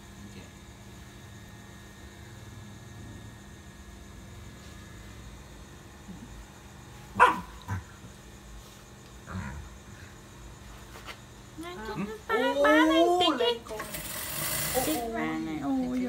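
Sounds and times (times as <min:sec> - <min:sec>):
dog barking: 0:07.2 - 0:07.8.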